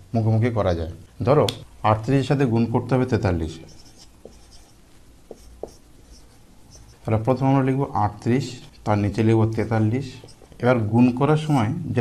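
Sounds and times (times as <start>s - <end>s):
marker scratching on whiteboard: 3.5s - 10.8s.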